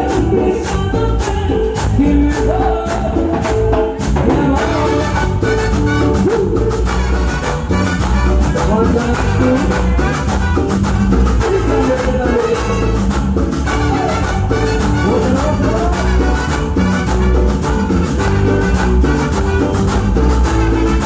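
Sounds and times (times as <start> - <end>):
latin dance band playing: 0.0 - 21.0.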